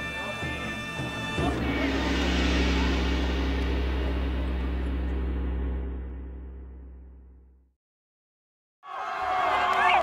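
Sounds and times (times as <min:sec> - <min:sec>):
deep low drone: 0:01.4 - 0:07.7.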